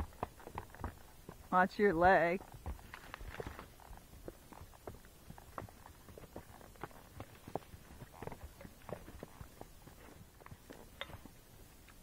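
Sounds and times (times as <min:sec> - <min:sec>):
horse hooves on dirt: 0:00.0 - 0:12.0.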